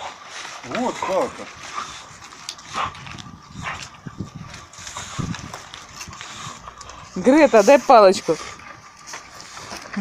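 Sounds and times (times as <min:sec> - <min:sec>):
dog snuffling and breathing hard: 0:00.0 - 0:10.0
twigs rustling and clicking: 0:00.0 - 0:10.0.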